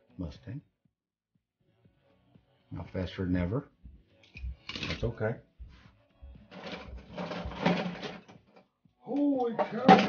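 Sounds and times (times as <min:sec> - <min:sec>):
toy cars rattling in plastic canister: 0:06.5 - 0:08.3.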